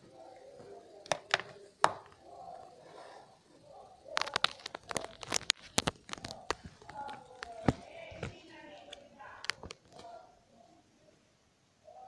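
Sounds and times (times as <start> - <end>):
faint murmured voices: 0.0 - 12.0.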